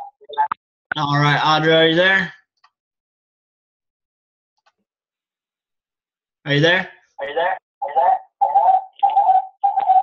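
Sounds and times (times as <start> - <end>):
voice echoing on video call: 6.4 - 10.0.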